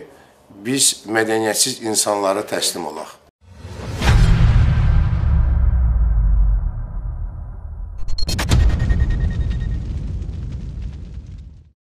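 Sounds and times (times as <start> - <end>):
deep cinematic boom: 3.4 - 11.7.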